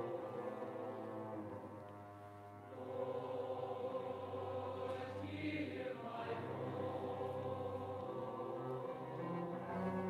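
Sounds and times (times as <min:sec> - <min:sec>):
choir singing sustained chords: 0:00.0 - 0:10.0
low steady note: 0:00.0 - 0:10.0.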